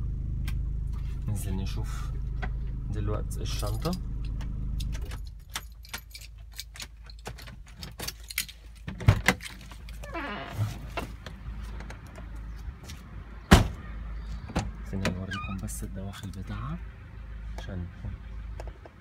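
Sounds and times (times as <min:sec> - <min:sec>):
car keys jangling: 0:03.6 - 0:10.1
car door clunks: 0:13.5 - 0:13.8.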